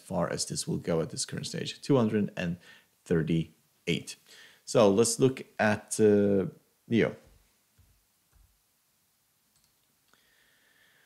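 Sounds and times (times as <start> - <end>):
keyboard and mouse clicks: 9.5 - 9.9.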